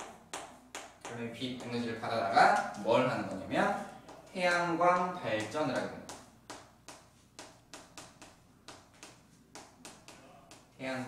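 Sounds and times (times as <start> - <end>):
chalk tapping and scratching: 0.0 - 1.9, 4.0 - 10.8.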